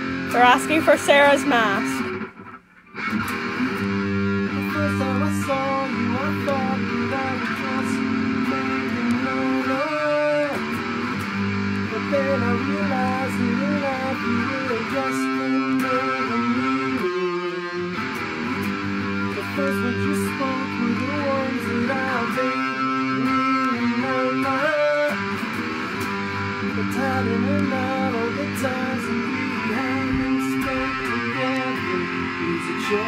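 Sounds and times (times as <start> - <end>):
electric guitar playing: 0.0 - 33.0.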